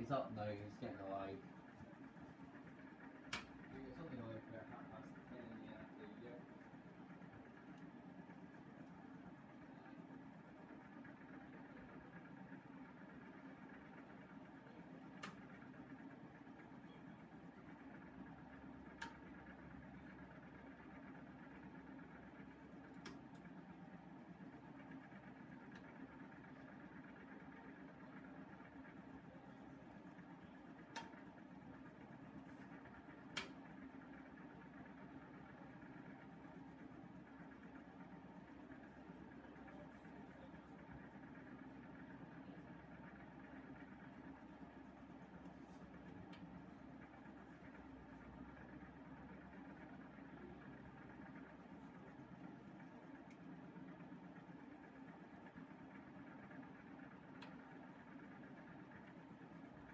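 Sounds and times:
washing machine motor hum: 0.0 - 59.9.

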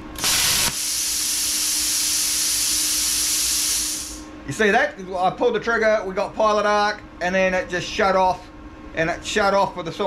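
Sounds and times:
compressed air hissing: 0.0 - 4.3
plasma torch pilot arc burst: 0.0 - 4.3.

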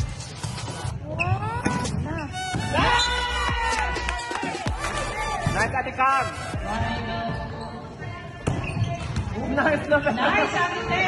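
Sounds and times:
faint voices in a hall: 4.4 - 11.0.

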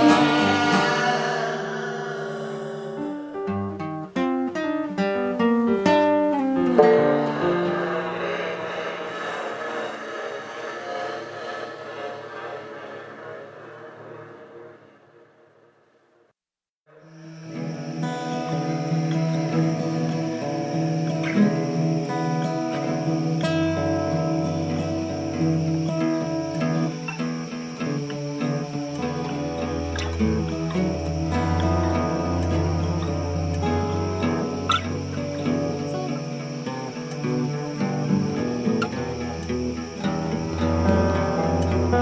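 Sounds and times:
steady low tone: 0.0 - 4.3, 5.0 - 15.8, 28.3 - 42.0
plucked acoustic string instrument: 0.0 - 7.8, 28.3 - 42.0.

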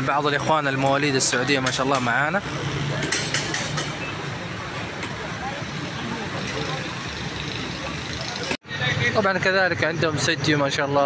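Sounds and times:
chatter of many voices: 0.0 - 11.0
traffic noise: 0.0 - 11.0.

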